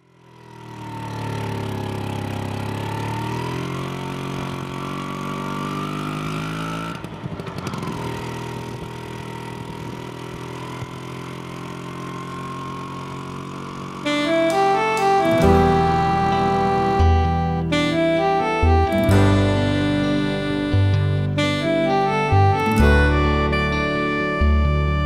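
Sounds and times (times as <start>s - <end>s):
motor scooter engine accelerating: 0.0s - 25.0s.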